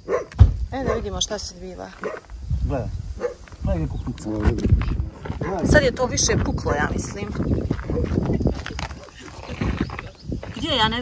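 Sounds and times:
indistinct voices talking: 0.7s - 11.0s.

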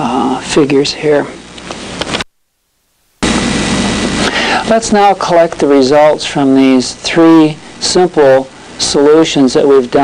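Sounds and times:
recording hiss: 0.0s - 10.0s
low hum: 1.2s - 8.8s.

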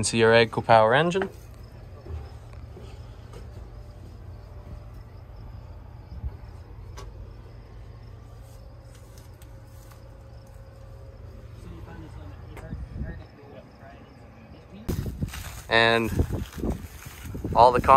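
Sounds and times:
diesel engine rumbling: 0.0s - 17.9s
faint steady whine: 0.0s - 17.9s.

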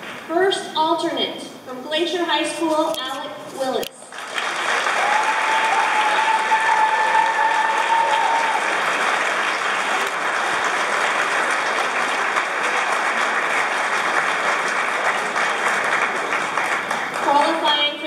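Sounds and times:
audience applause: 4.1s - 18.0s.

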